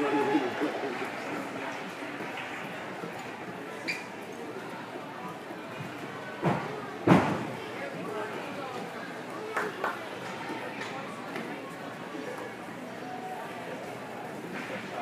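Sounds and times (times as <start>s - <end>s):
chatter echoing in hall: 0.0s - 15.0s.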